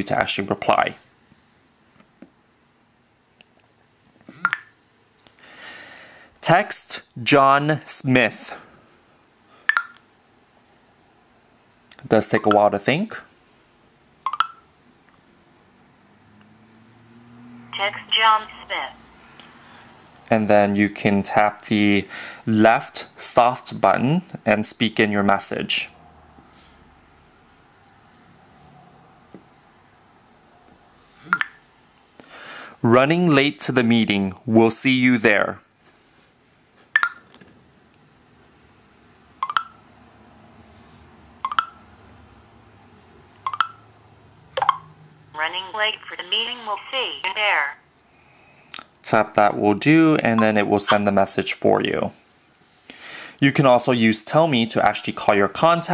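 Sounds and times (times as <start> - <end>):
phone electronic beep: 14.3 - 14.7, 39.4 - 39.8, 41.4 - 41.8, 43.5 - 43.8.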